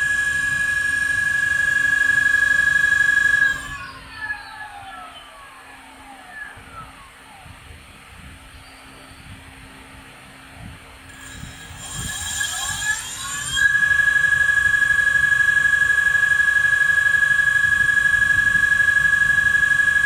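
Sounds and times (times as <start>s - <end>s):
electric motor whine: 0.0s - 7.4s, 11.1s - 20.0s.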